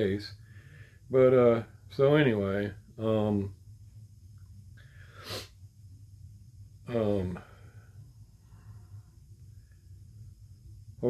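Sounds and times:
faint low hum: 0.0 - 11.0
sharp breath through nose: 4.8 - 5.6.

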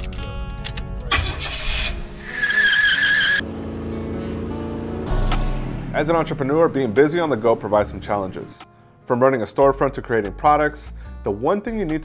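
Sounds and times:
background music: 0.0 - 12.0
car engine rumbling: 1.1 - 8.5
tire squeal: 1.5 - 3.4.

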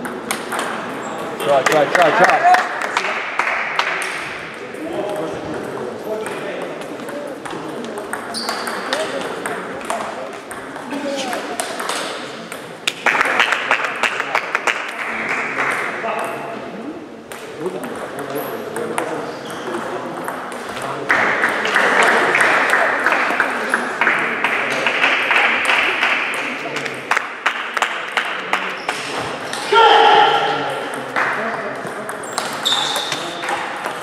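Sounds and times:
table tennis balls clicking: 0.0 - 1.8, 5.1 - 13.3.

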